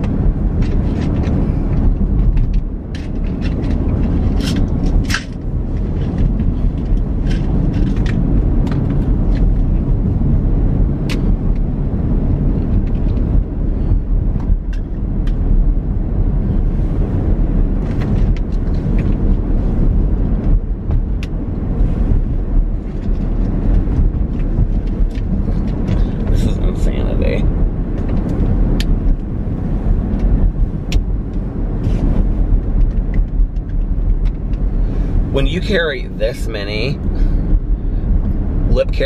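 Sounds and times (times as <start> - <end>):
car road and engine rumble: 0.0 - 39.0.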